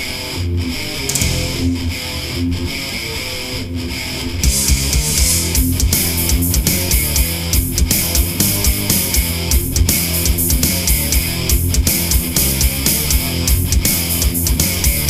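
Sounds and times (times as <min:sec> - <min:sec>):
distorted electric guitar riff: 0:00.0 - 0:15.0
bass guitar: 0:00.4 - 0:15.0
drums with kick and cymbals: 0:01.1 - 0:01.9, 0:04.4 - 0:15.0.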